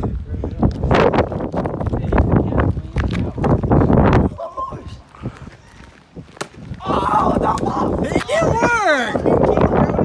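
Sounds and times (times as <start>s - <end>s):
running footsteps on wet pavement: 0.0s - 9.1s
wind buffeting microphone: 0.0s - 10.0s.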